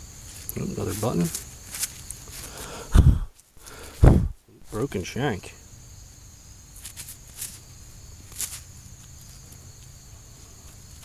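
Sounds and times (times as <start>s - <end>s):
insect chirring: 0.0s - 11.0s
handling rustles: 0.1s - 2.7s, 6.8s - 9.6s.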